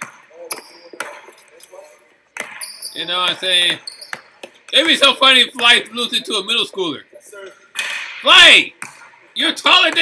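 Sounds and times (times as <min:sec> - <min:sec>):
basketball bouncing: 0:08.8 - 0:09.2, 0:09.8 - 0:10.0.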